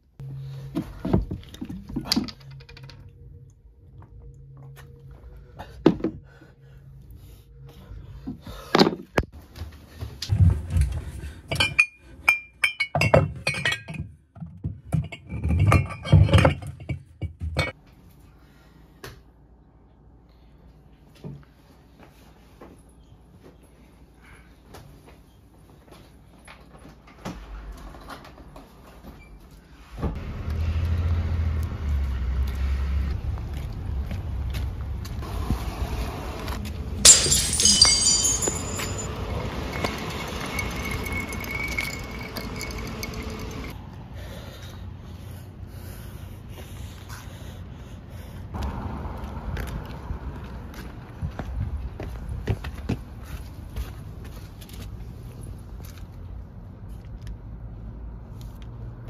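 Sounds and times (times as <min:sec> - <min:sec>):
glass bottles clinking: 0:11.5 - 0:14.2, 0:37.0 - 0:43.7
traffic rumble: 0:29.8 - 0:59.0
high-pitched ringing squeal: 0:37.0 - 0:43.7.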